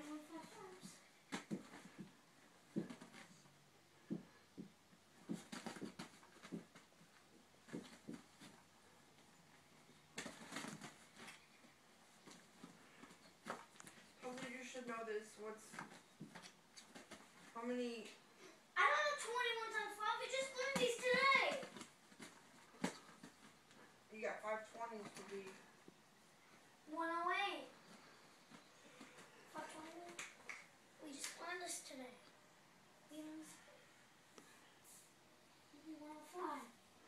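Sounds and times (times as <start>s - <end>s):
kitten scuffling: 0.0s - 17.8s.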